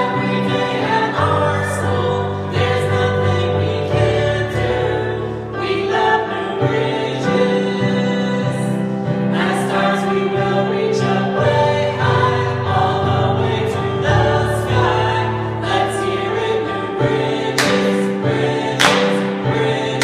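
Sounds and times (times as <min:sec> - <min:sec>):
group of adults singing: 0:00.0 - 0:20.0
instrumental accompaniment: 0:09.2 - 0:20.0
hand claps: 0:17.5 - 0:18.1, 0:18.8 - 0:19.4.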